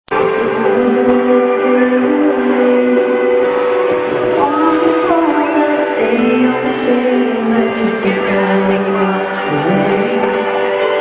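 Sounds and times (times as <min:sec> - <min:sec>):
held synthesizer chords: 0:00.1 - 0:11.0
person singing: 0:00.1 - 0:11.0.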